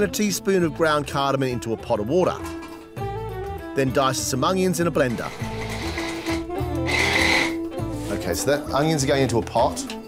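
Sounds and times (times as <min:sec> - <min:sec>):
electric food chopper whining: 0:05.1 - 0:07.6.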